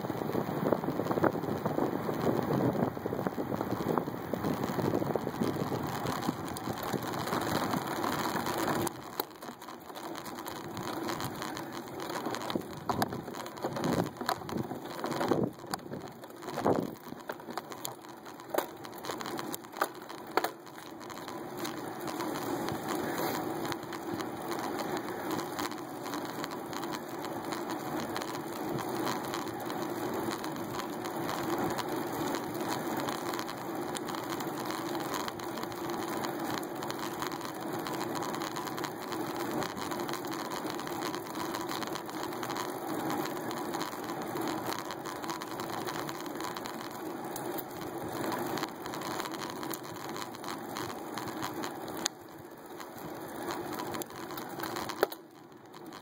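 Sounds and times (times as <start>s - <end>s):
bicycle tyres on asphalt: 0.0s - 56.0s
small clicks and knocks: 0.0s - 56.0s.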